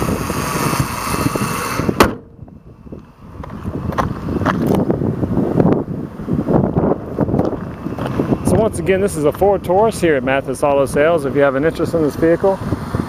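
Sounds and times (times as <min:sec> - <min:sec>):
car engine running: 0:00.0 - 0:13.0
wind on microphone: 0:00.0 - 0:13.0
car hood slamming: 0:02.0 - 0:02.4.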